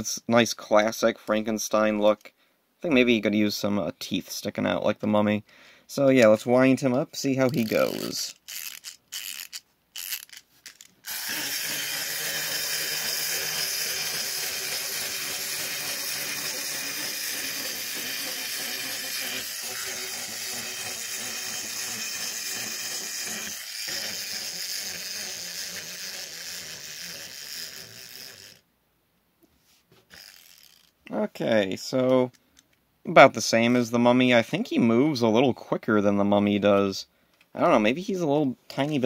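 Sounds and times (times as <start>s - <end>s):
clockwork toy running: 7.4s - 28.6s, 30.2s - 30.9s
wind-up key clicking: 7.5s - 28.6s.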